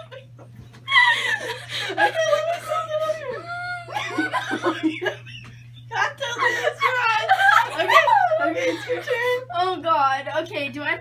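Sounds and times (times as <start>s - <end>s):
women laughing hard: 0.0s - 9.5s.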